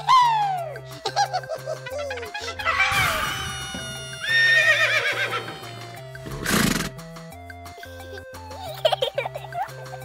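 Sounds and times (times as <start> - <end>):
horse whinny: 2.7 - 7.0.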